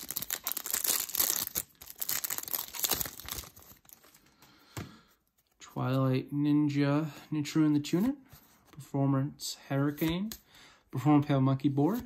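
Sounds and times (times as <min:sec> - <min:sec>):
foil wrapper crinkling and tearing: 0:00.0 - 0:04.3.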